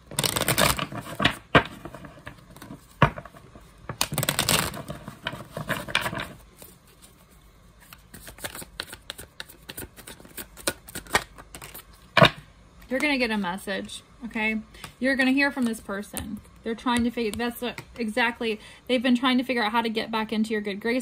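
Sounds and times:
cards being shuffled: 0.1 - 12.1.

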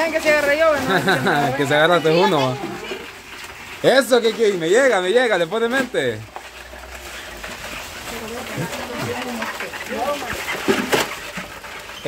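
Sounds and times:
sharp clatter in metal pot: 0.0 - 12.0.

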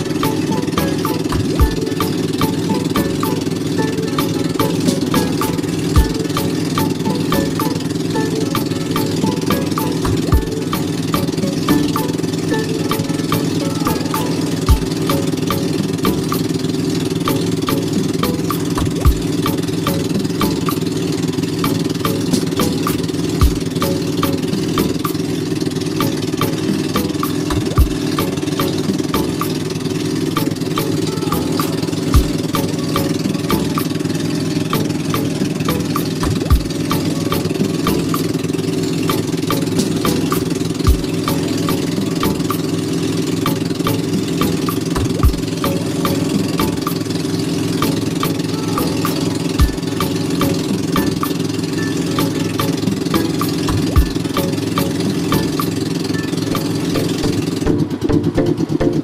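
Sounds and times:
engine running steadily: 0.0 - 59.0.

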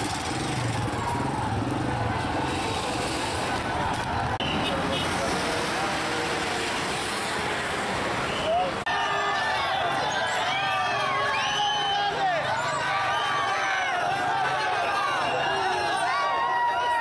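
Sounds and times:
vehicle engines passing: 0.0 - 8.9
steady street noise: 0.0 - 17.0.

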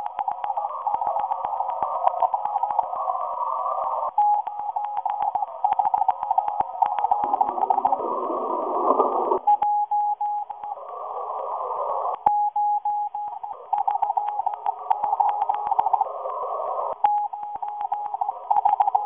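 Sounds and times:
static crackles: 0.0 - 19.0.

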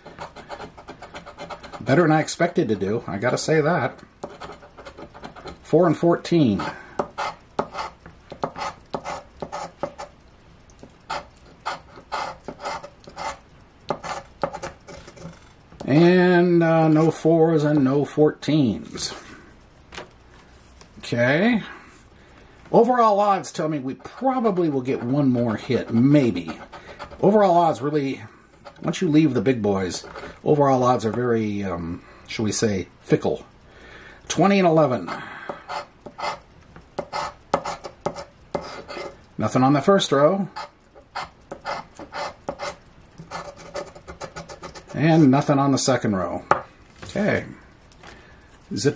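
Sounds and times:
coin scraping lottery ticket: 40.6 - 45.1.

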